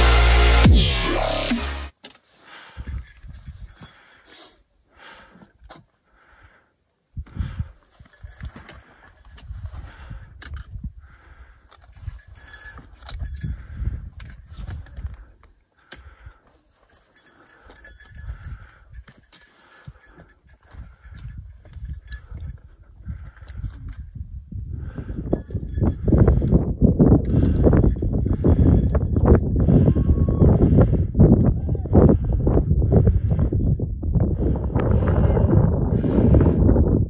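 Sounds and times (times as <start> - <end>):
background music: 0.0 - 1.9
wind buffeting microphone: 7.2 - 15.4, 20.6 - 37.0.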